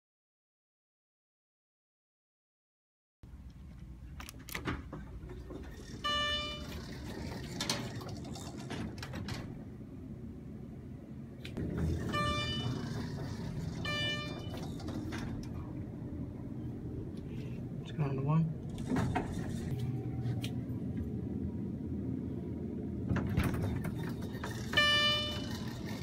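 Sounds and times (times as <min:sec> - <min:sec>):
elevator chime tone: 0:05.9 - 0:06.8, 0:11.8 - 0:13.0, 0:13.8 - 0:14.7, 0:24.7 - 0:25.6.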